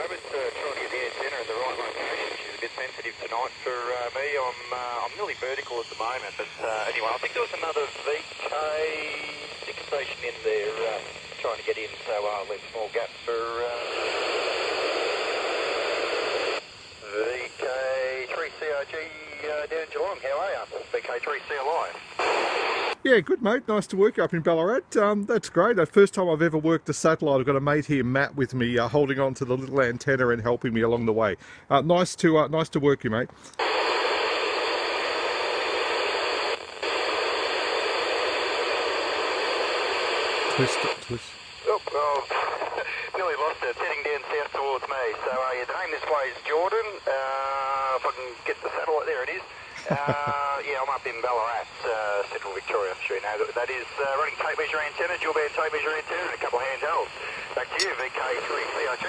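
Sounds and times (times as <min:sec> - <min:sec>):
speech over radio speaker: 0:00.0 - 0:59.0
steady radio hiss: 0:00.0 - 0:59.0.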